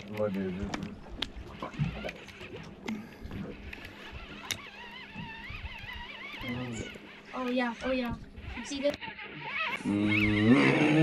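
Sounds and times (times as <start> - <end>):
fishing reel clicking: 3.6 - 10.4.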